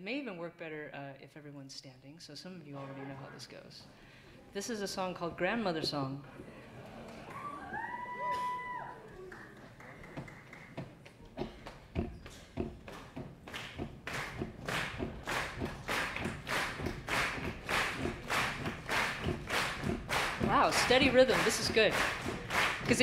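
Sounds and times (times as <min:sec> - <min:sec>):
audience stomping and clapping: 0:06.3 - 0:23.0.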